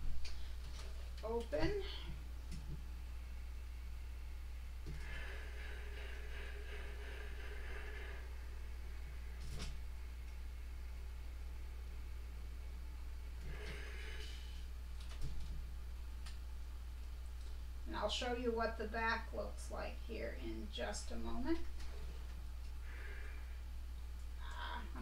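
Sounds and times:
steady low hum: 0:00.0 - 0:25.0
iron hissing: 0:04.7 - 0:10.1, 0:13.4 - 0:14.8.

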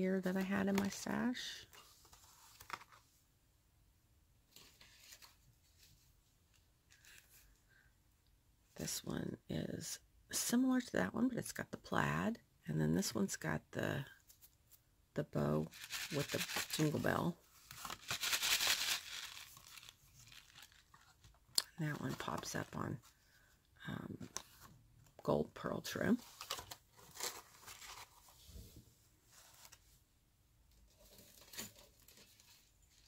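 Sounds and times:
paper card rustling and rattling: 0:00.7 - 0:03.1, 0:15.7 - 0:22.6, 0:26.2 - 0:28.4.

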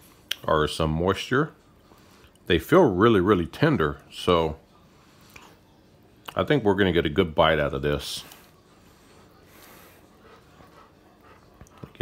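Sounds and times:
dog panting: 0:08.0 - 0:12.0.

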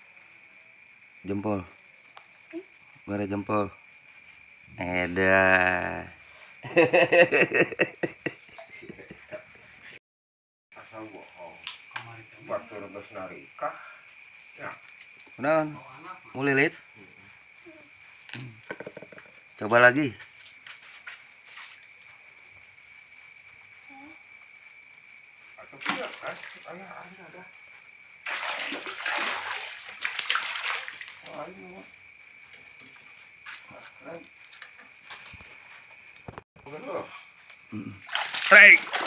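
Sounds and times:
water splashing and sloshing: 0:25.6 - 0:27.1, 0:28.2 - 0:31.8, 0:38.0 - 0:39.0.

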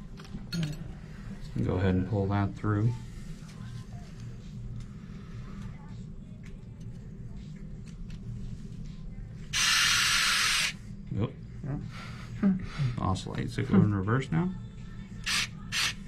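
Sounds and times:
low steady hum: 0:00.0 - 0:09.7, 0:10.7 - 0:16.0
power wire driver hissing: 0:09.6 - 0:10.8.

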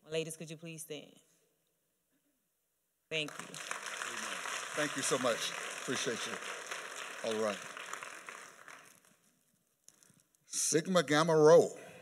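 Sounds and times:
congregation applause: 0:03.2 - 0:09.3.

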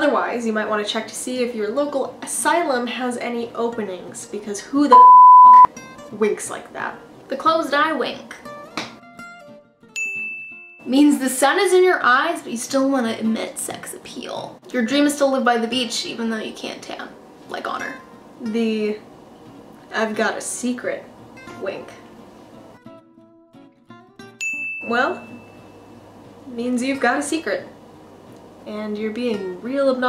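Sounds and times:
bright ding: 0:24.4 - 0:26.0.

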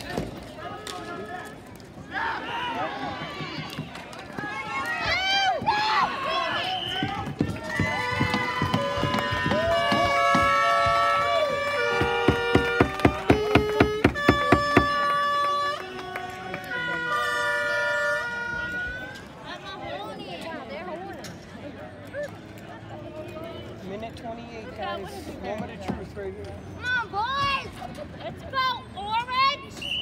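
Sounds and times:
held horn-like notes: 0:08.7 - 0:19.2.

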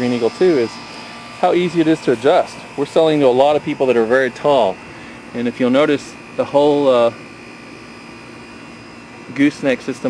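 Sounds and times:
faint hum: 0:00.1 - 0:10.0.

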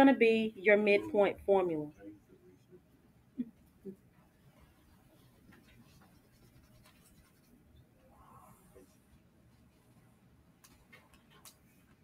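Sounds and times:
pen scratching on paper: 0:04.6 - 0:07.6.

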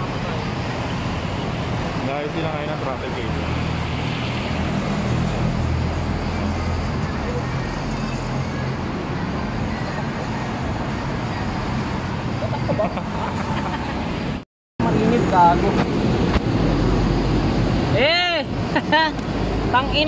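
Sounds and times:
road traffic noise: 0:00.0 - 0:20.0.

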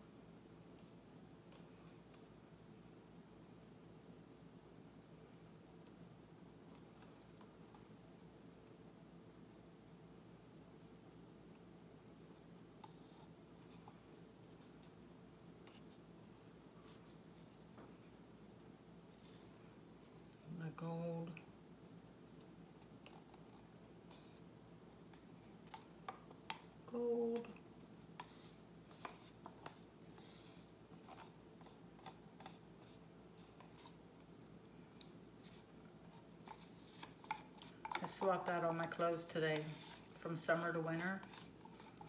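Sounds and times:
soft hiss: 0:00.0 - 0:42.0
plastic cups clicking and rustling: 0:35.4 - 0:40.5.

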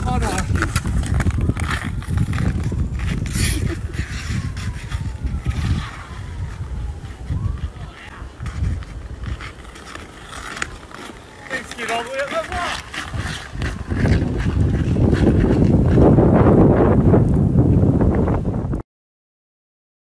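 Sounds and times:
ice skate blades scraping ice: 0:00.0 - 0:16.3
wind buffeting microphone: 0:00.0 - 0:18.8.

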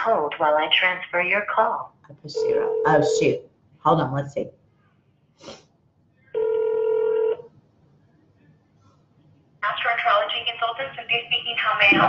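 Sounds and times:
telephone line tone: 0:02.4 - 0:03.2, 0:06.4 - 0:07.5.

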